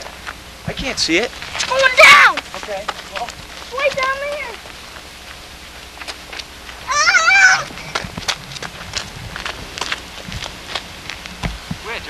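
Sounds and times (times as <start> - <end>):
child squealing: 6.8 - 7.8.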